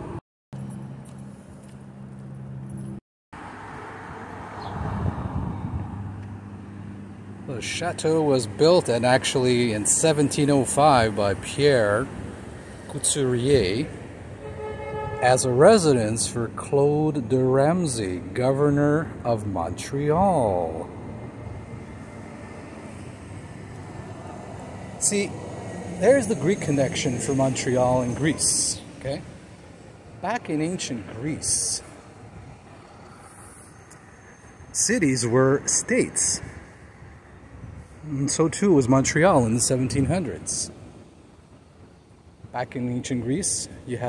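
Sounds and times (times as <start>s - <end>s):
city background rumble: 0.0s - 44.0s
motor vehicle passing: 0.6s - 7.5s.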